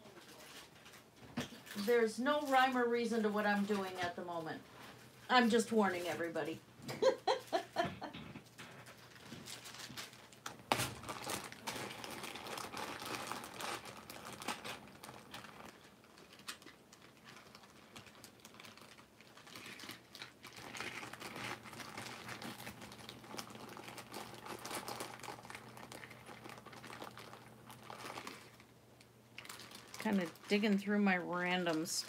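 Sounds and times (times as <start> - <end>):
crinkling and rustling: 0.0 - 32.0.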